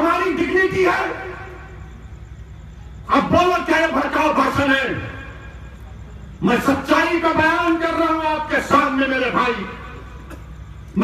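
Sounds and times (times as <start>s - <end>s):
public-address echo: 0.0s - 1.8s, 6.4s - 11.0s
low steady hum: 0.0s - 11.0s.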